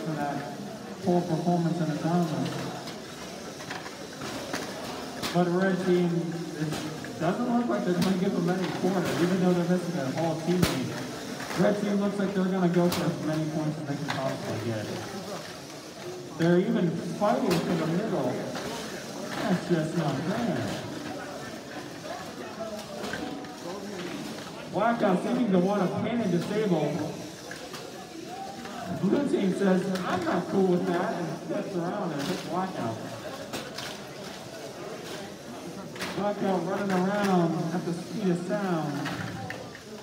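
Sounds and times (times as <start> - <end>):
people chattering: 0.0 - 40.0.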